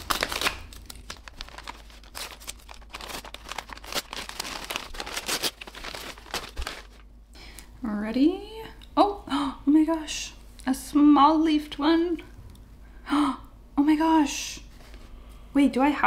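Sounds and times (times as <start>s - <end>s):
paper crinkling and tearing: 0.0s - 7.1s.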